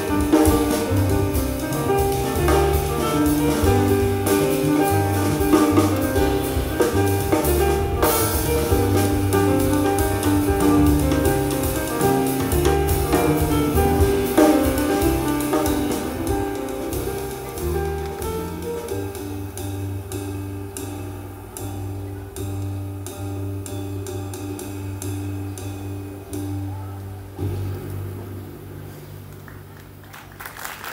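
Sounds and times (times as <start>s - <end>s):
free jazz trio playing: 0.0s - 30.5s.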